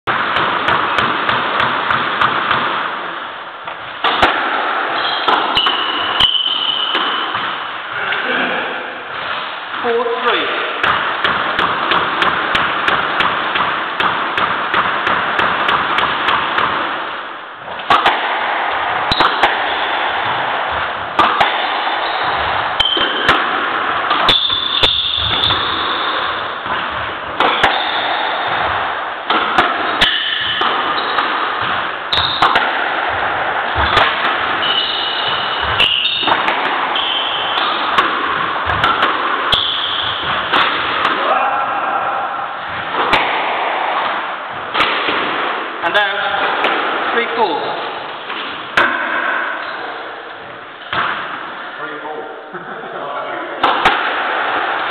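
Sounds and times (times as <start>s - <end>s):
squash ball cracking off rackets: 0.1s - 8.2s, 10.5s - 41.4s, 42.0s - 51.7s, 53.6s - 54.9s
steady background hiss: 0.1s - 54.9s
shoes squeaking on wooden floor: 5.0s - 8.1s, 22.0s - 23.3s, 30.9s - 31.2s, 34.6s - 37.9s.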